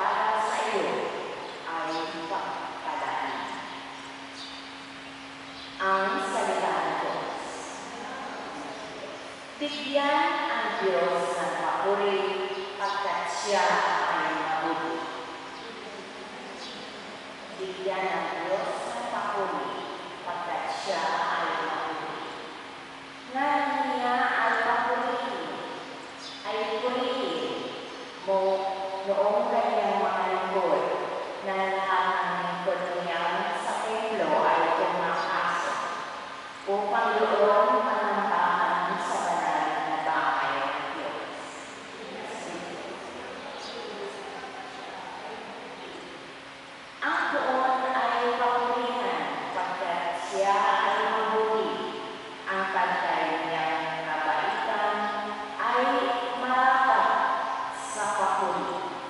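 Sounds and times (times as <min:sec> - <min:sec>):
woman speaking through microphone: 0:00.0 - 0:03.8, 0:05.8 - 0:22.4, 0:23.3 - 0:46.3, 0:47.0 - 0:59.0
faint steady hum: 0:00.0 - 0:59.0.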